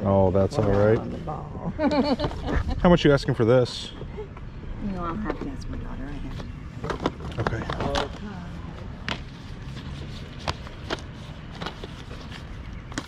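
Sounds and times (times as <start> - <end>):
plastic cases clacking: 6.8 - 8.2.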